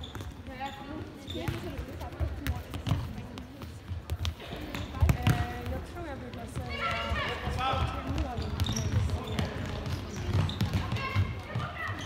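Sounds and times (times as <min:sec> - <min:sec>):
ball being kicked: 0:04.1 - 0:05.7.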